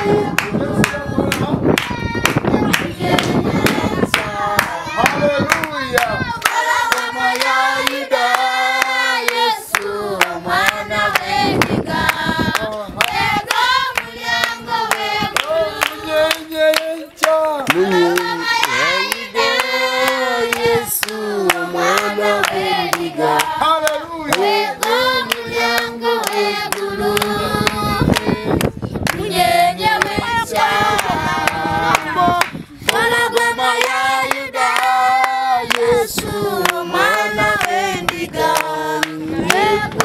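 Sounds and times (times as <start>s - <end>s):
children and man singing: 0.0s - 40.0s
hands clapping: 0.4s - 29.2s, 30.0s - 40.0s.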